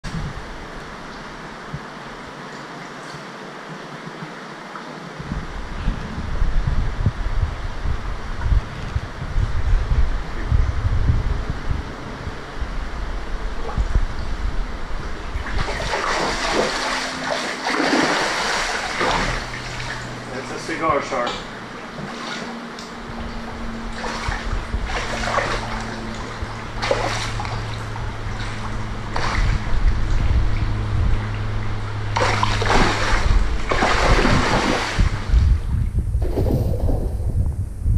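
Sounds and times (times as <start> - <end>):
water sloshing: 13.1 - 37.5
fish thrashing and splashing: 15.2 - 20.6, 21.6 - 30.8, 31.4 - 35.4.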